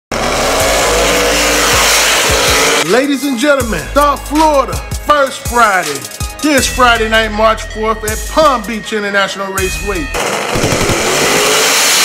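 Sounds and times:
race car engine accelerating: 0.1s - 2.9s, 10.2s - 12.0s.

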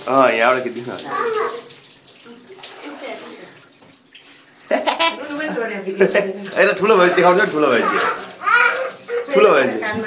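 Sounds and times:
water poured and splashing: 0.0s - 10.0s.

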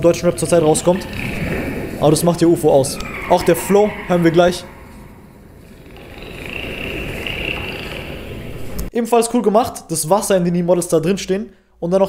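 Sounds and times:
high steady dolphin whistle: 3.0s - 8.6s.

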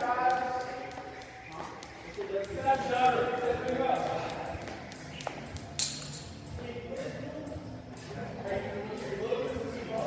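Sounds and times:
indistinct echoing voices: 0.0s - 10.0s.

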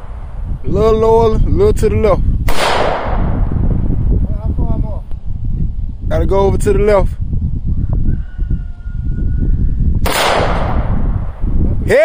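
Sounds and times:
low rumble: 0.0s - 11.9s
rifle shot echo: 2.4s - 3.6s, 10.0s - 11.3s.

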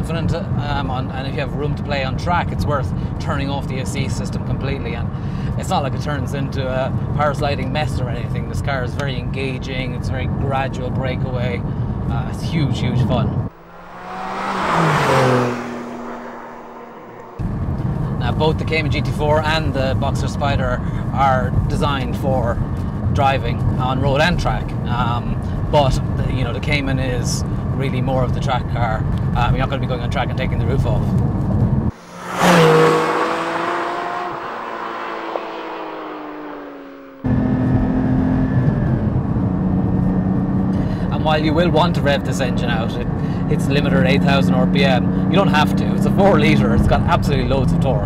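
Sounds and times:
road noise inside car: 0.0s - 48.0s
car passing by: 13.5s - 18.2s, 31.9s - 37.2s.

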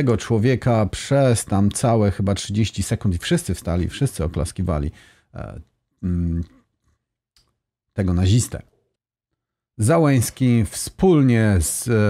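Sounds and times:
man breath sound: 4.9s - 5.3s.

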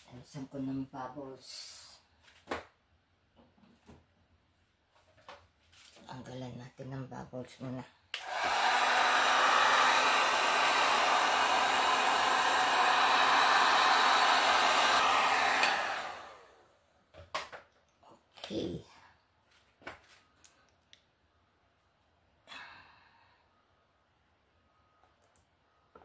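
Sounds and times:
heat gun blowing: 8.2s - 16.6s.

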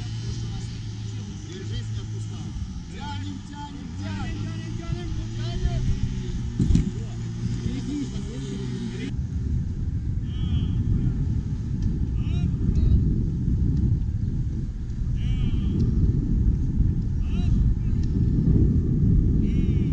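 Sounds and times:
men's voices: 0.0s - 9.2s, 10.2s - 11.4s, 12.0s - 13.2s, 15.0s - 16.2s, 17.0s - 18.3s, 19.4s - 19.9s
dense low rumble: 0.0s - 19.9s.

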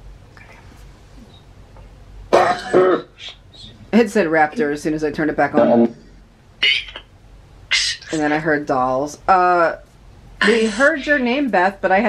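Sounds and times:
distorted voice-like burst: 2.3s - 3.8s, 5.6s - 6.0s, 7.7s - 8.6s.

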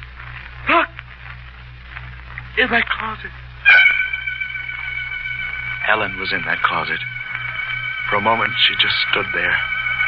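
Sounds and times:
low steady hum: 0.0s - 10.0s
dramatic music sting chord: 3.7s - 10.0s.

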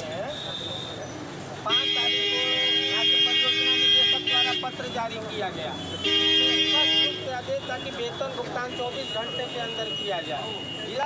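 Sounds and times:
crowd talking: 0.0s - 11.0s
vehicle horn blast: 6.0s - 7.2s.

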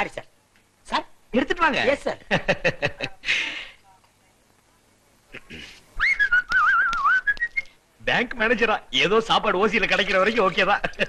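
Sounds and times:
person whistling a tune: 6.0s - 7.7s.

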